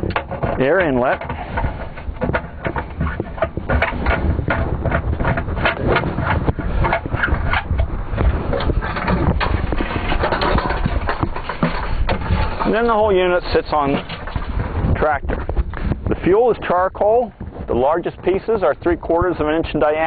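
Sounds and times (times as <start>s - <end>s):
metal canisters knocking: 0.0s - 15.5s
steady low rumble: 0.0s - 20.0s.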